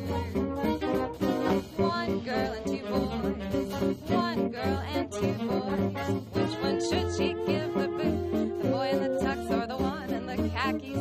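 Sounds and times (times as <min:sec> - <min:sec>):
swing jazz band playing: 0:00.0 - 0:11.0.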